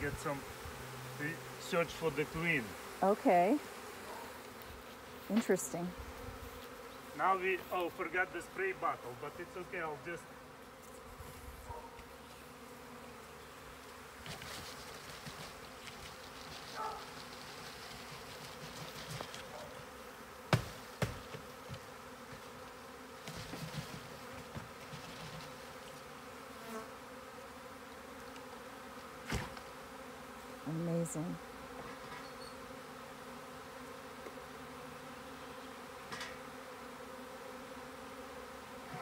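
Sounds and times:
bee swarm buzzing: 0.0s - 39.0s
cardboard box thumps: 20.5s - 22.4s.

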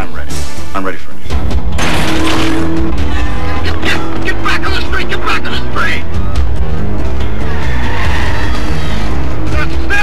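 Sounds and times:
film score music: 0.0s - 10.0s
tyres skidding: 1.8s - 10.0s
car driving fast: 1.9s - 9.9s.

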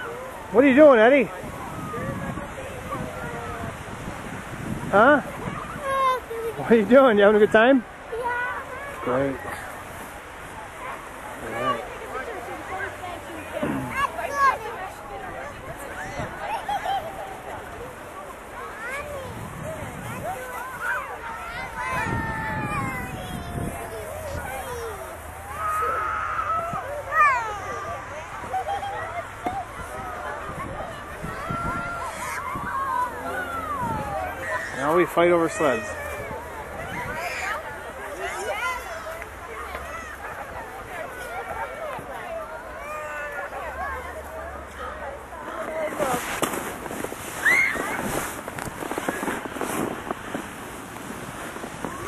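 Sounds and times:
children's voices: 1.4s - 6.7s, 7.9s - 50.2s
crunching in packed snow: 45.5s - 52.0s
child squealing: 47.4s - 48.0s.

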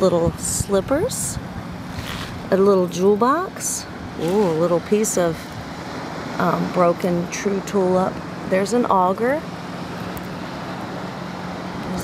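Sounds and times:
constant low hum: 0.0s - 12.0s
wind: 0.0s - 12.0s.

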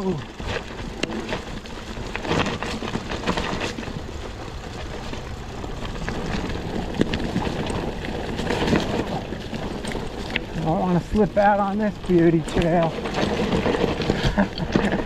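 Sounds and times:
bike rattling clicks and knocks: 0.0s - 15.0s
tyres rolling over dirt and leaves: 0.0s - 15.0s.

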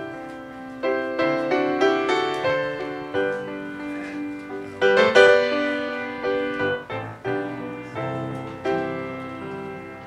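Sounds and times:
piano chords: 0.0s - 10.0s.

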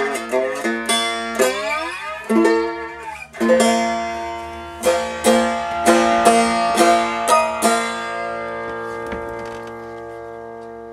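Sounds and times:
faint string noise: 0.0s - 10.9s
resonator guitar chord ringing: 0.0s - 10.9s.

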